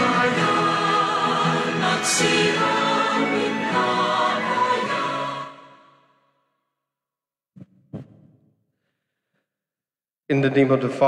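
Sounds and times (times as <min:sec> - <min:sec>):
choir singing a hymn: 0:00.0 - 0:06.2.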